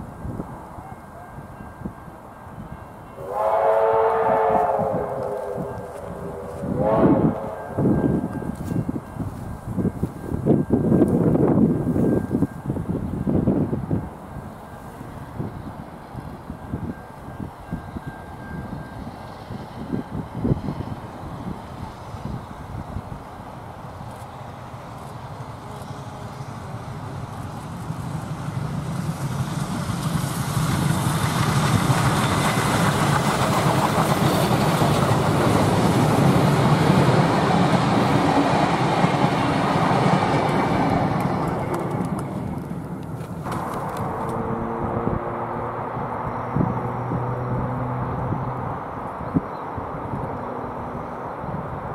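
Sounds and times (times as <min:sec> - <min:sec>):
steam locomotive hauling carriages: 0:00.0 - 0:51.9.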